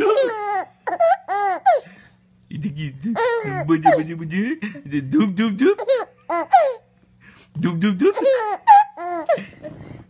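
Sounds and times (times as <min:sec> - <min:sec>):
baby laughing: 0:00.0 - 0:01.8, 0:03.1 - 0:04.8, 0:05.6 - 0:06.8, 0:08.0 - 0:09.5.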